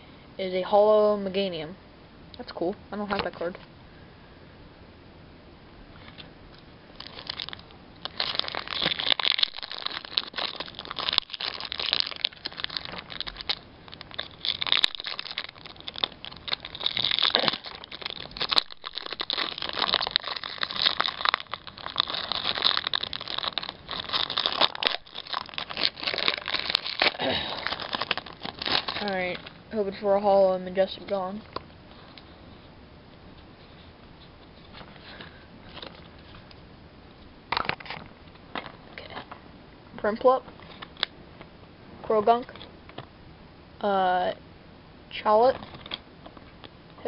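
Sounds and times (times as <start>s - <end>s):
foil wrapper crinkling: 6.9s - 30.0s, 34.7s - 36.5s, 45.5s - 46.0s.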